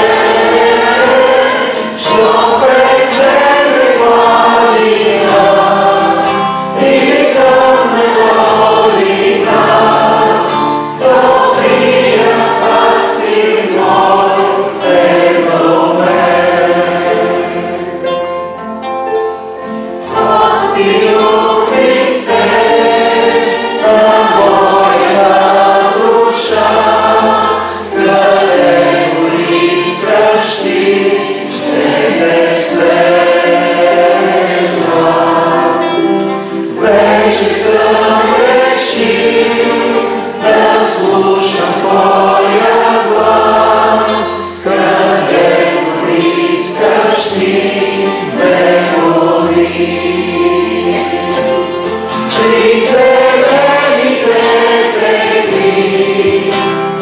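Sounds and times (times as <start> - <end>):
group singing in harmony: 0.0 - 18.6, 19.6 - 57.0
acoustic guitar: 0.0 - 57.0
keyboard: 0.0 - 57.0.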